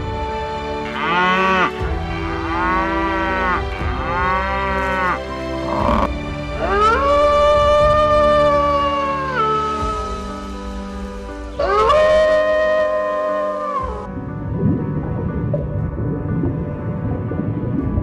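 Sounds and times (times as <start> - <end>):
background music: 0.0 - 18.0
bison bellowing: 2.3 - 10.6
fox howling call: 4.5 - 10.8, 11.6 - 14.1.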